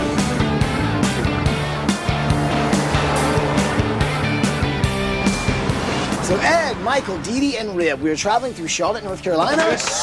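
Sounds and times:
bass line: 0.0 - 7.8.

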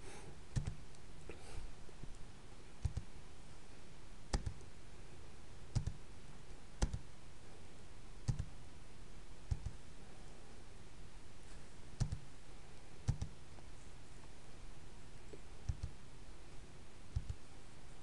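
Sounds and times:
faint room hiss: 0.0 - 18.0
computer mouse clicks: 0.5 - 1.0, 2.8 - 3.1, 4.3 - 4.7, 5.7 - 6.0, 6.8 - 7.1, 8.2 - 8.5, 9.5 - 9.8, 12.0 - 12.3, 13.0 - 13.4, 15.6 - 16.0, 17.1 - 17.4.

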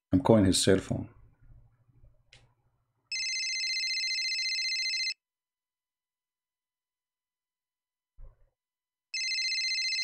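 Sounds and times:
electronic telephone ring: 3.1 - 5.2, 9.2 - 10.0.

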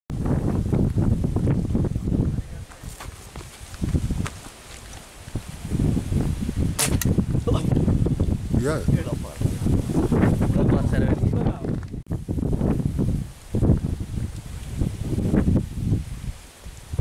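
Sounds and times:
wind rumbling on microphone: 0.1 - 17.0
dart gun shot: 6.8 - 7.1.

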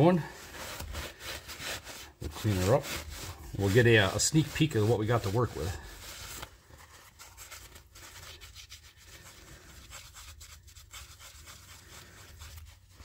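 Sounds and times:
cloth rag rubbing and rustling: 0.0 - 13.0.

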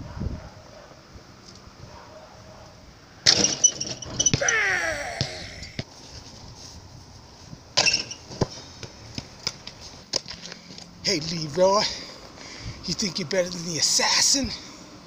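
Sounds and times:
basketball clanging on metal rim: 3.3 - 4.5, 7.8 - 8.2.

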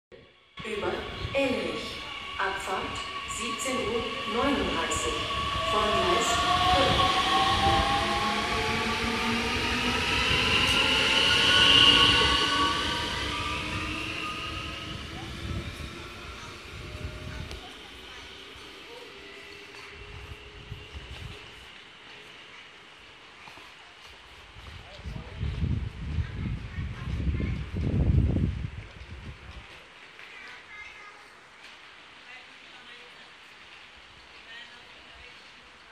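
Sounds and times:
train traction motors whining: 0.6 - 23.0
train wheel noise: 0.6 - 32.1.

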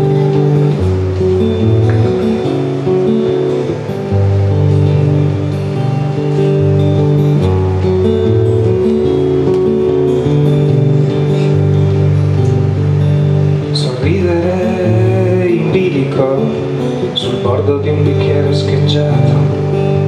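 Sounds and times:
acoustic guitar picking: 0.0 - 20.0.

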